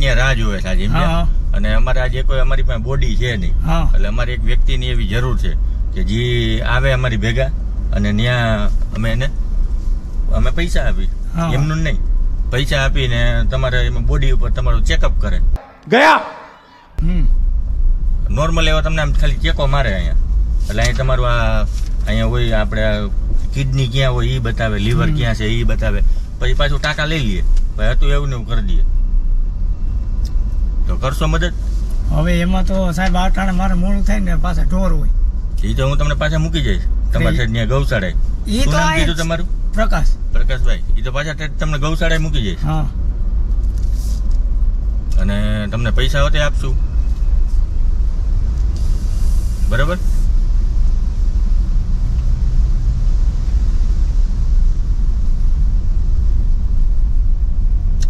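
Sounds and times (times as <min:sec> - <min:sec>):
men talking: 0:00.0 - 0:09.4, 0:10.3 - 0:17.4, 0:18.3 - 0:28.9, 0:30.9 - 0:42.9, 0:45.2 - 0:46.8, 0:49.7 - 0:50.1
car rumbling on the road: 0:00.0 - 0:58.0.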